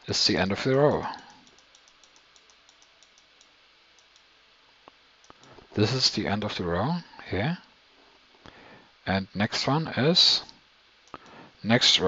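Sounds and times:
computer control clicking: 0:01.1 - 0:04.3, 0:11.0 - 0:11.4.

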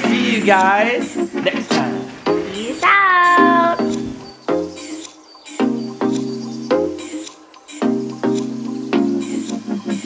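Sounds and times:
background music: 0:00.0 - 0:10.0
cat meowing: 0:02.8 - 0:03.9.

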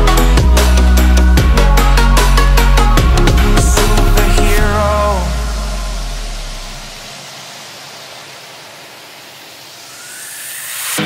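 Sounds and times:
deep bass note: 0:00.0 - 0:07.0
electronic dance beat: 0:00.0 - 0:07.2
hissing noise sweep: 0:00.0 - 0:11.0
rising whine: 0:00.0 - 0:11.0.

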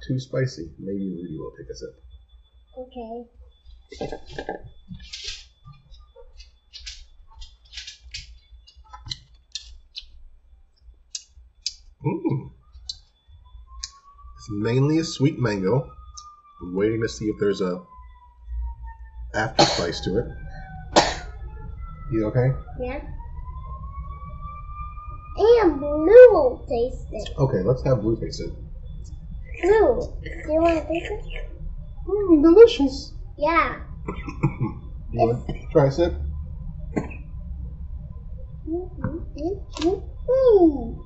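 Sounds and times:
faint low hum: 0:00.0 - 0:41.0
high wailing tone rising: 0:12.1 - 0:41.0
mouth clicks: 0:34.1 - 0:35.8.

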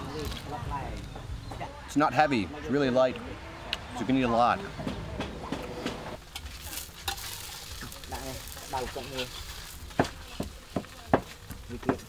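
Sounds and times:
batter sizzling in pans: 0:06.2 - 0:12.0.

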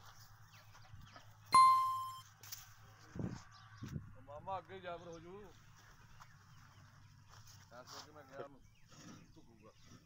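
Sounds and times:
electronic bell ding: 0:01.6 - 0:02.2.

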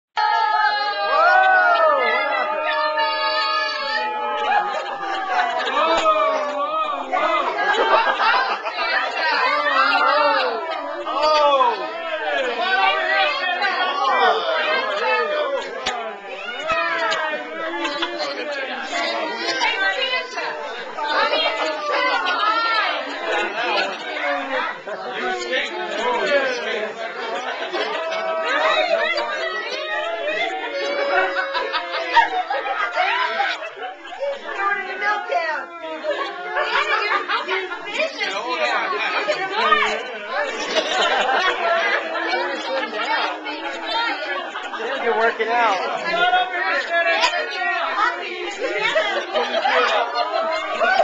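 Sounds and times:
crowd chatter: 0:00.2 - 0:51.0.

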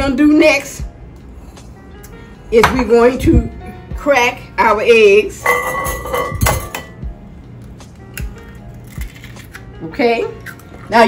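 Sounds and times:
knocks and clinks: 0:05.4 - 0:07.0.

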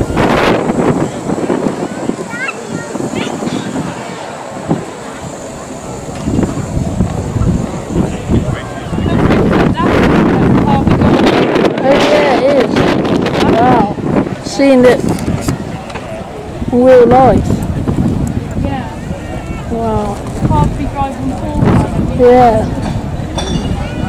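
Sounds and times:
people talking: 0:00.0 - 0:24.0
wind buffeting microphone: 0:00.0 - 0:24.0.

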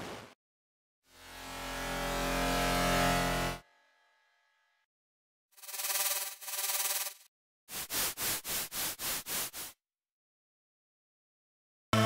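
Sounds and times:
bright buzzy synth tone: 0:05.6 - 0:07.3.

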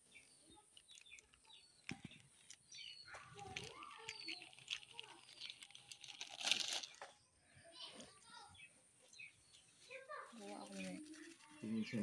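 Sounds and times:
bird chirps: 0:00.0 - 0:06.0.

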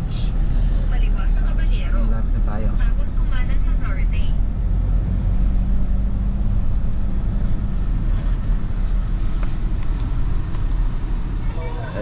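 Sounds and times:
car engine hum: 0:00.0 - 0:12.0
road rumble: 0:00.0 - 0:12.0.

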